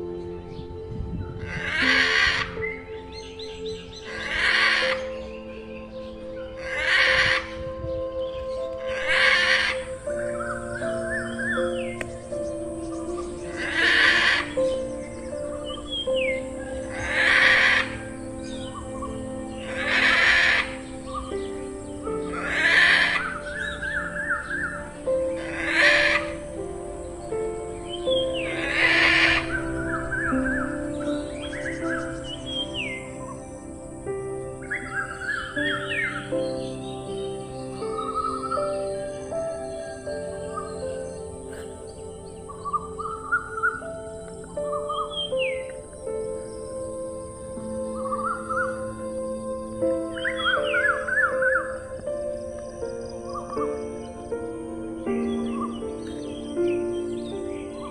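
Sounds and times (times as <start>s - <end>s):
soft background music: 0.0s - 57.9s
steady high hiss: 0.0s - 57.9s.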